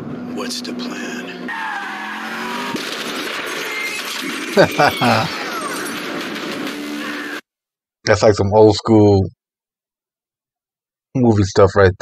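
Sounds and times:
car tyres squealing: 1.4 - 5.8
car smashing through debris: 1.9 - 6.9.

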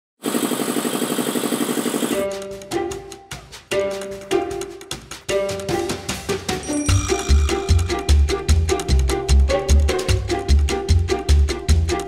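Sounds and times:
air compressor running: 0.2 - 2.2.

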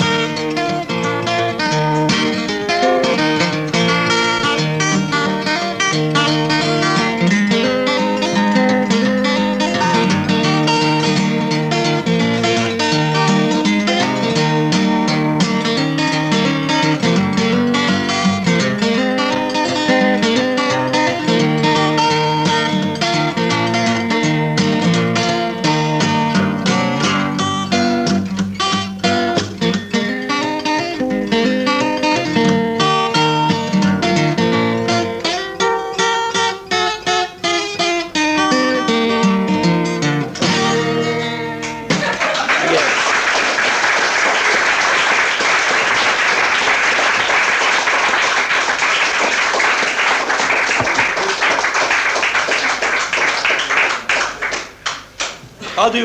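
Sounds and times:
acoustic guitar playing: 0.0 - 56.0
audience applause: 41.9 - 55.4.

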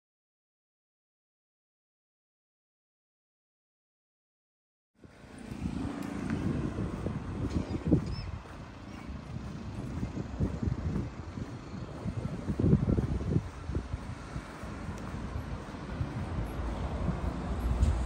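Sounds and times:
low traffic rumble: 5.0 - 18.0
wind buffeting microphone: 5.0 - 18.0.

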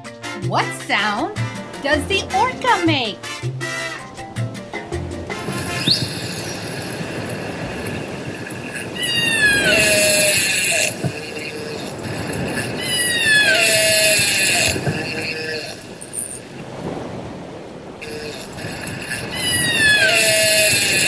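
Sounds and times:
water hiss: 1.4 - 21.0
orca calls underwater: 5.3 - 16.7, 18.0 - 21.0.

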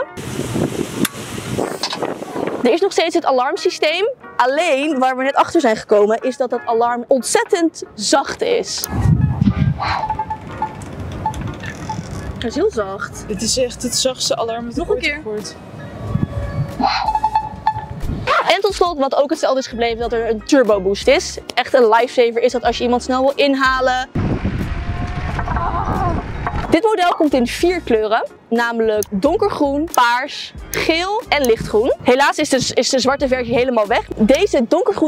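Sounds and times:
wind noise on microphone: 0.0 - 4.0, 8.4 - 19.0, 22.6 - 29.9, 30.5 - 35.0
soft alarm beeps: 17.1 - 18.0.

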